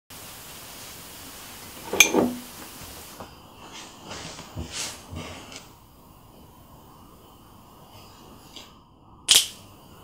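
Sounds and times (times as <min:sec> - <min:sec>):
faint room hiss: 0:00.1 - 0:10.0.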